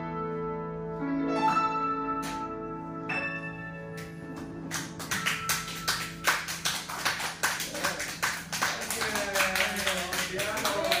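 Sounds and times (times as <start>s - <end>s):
piano chord: 0.0s - 6.8s
audience clapping: 4.0s - 11.0s.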